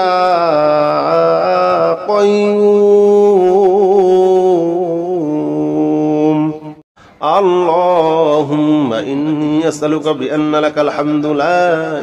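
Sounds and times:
person chanting a prayer: 0.0s - 12.0s.

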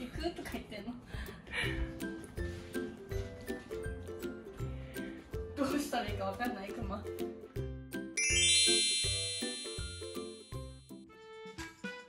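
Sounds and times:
light background music: 0.0s - 12.0s
bright bell-like chime: 8.2s - 10.8s.

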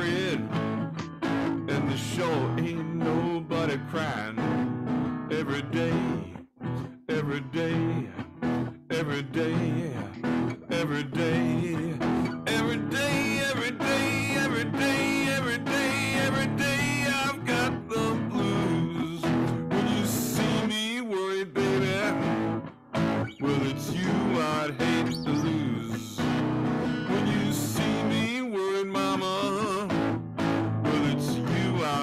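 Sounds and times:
man singing: 0.0s - 0.7s, 1.6s - 4.7s, 5.3s - 22.6s, 23.3s - 26.4s, 27.0s - 32.0s
acoustic guitar strumming blues: 0.0s - 32.0s.

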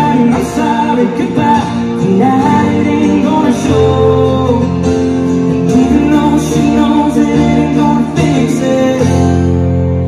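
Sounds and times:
guitar: 0.0s - 10.0s
person singing: 0.0s - 10.0s
piano: 0.0s - 10.0s.

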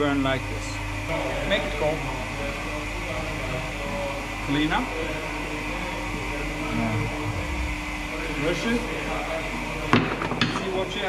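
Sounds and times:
ventilation hum and hiss: 0.0s - 9.8s.

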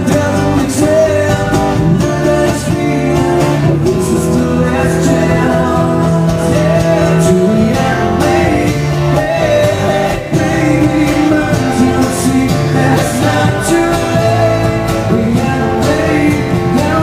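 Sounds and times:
acoustic guitar: 0.0s - 17.0s
man singing: 0.0s - 17.0s.

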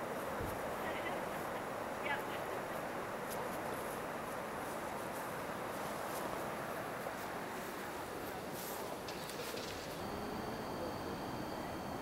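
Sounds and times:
faint high chirps: 10.0s - 12.0s.

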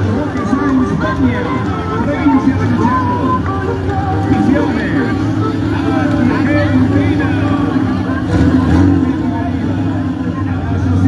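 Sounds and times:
car engine humming: 0.0s - 11.0s
people chatting: 0.0s - 11.0s.

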